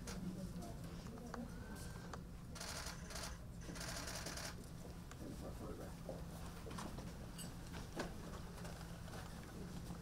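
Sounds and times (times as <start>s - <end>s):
low room hum: 0.0s - 10.0s
camera shutters clicking: 2.6s - 4.6s.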